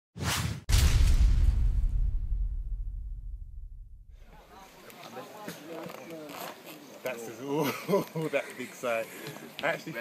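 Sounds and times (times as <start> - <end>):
whoosh: 0.2 - 4.3
deep rumbling boom: 0.7 - 4.3.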